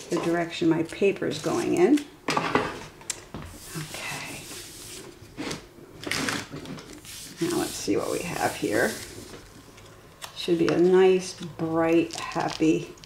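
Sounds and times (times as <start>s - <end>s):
paper rustling: 6.1s - 9.6s.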